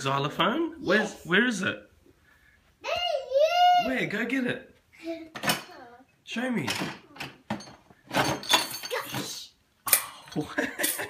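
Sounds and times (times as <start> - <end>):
toys clattering together: 5.3 - 5.7, 6.6 - 11.0.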